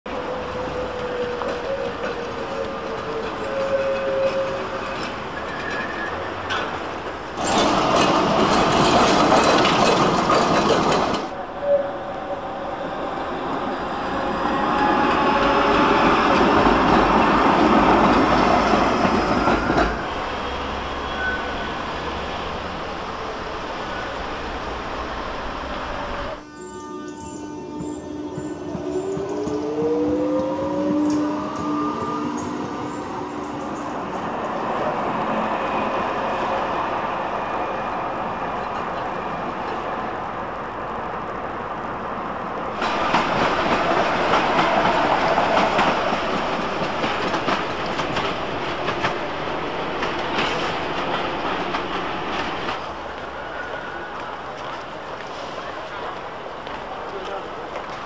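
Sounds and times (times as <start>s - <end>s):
tram motor whine: 0.1s - 58.0s
wheels running on rails: 0.6s - 11.4s.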